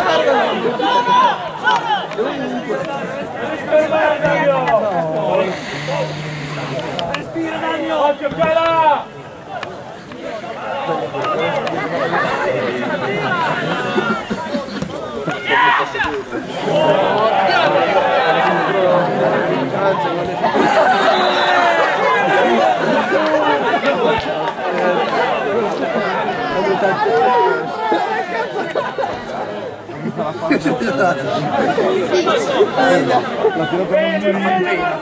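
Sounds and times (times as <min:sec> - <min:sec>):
people chatting: 0:00.0 - 0:35.0.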